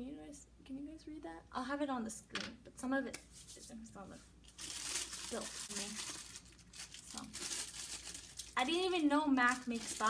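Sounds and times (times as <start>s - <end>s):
packaging crinkling and rustling: 4.4s - 10.0s.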